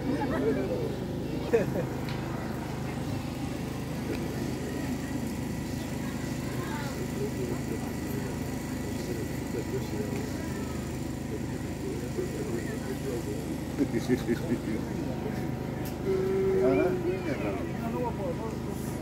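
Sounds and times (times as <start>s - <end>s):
low mechanical hum: 0.0s - 19.0s
voices chattering: 0.0s - 19.0s.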